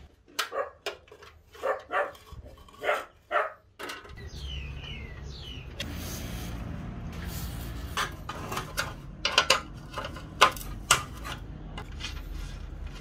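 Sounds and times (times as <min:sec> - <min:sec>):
dog barking: 0:00.5 - 0:00.8, 0:01.6 - 0:02.2, 0:02.8 - 0:03.6.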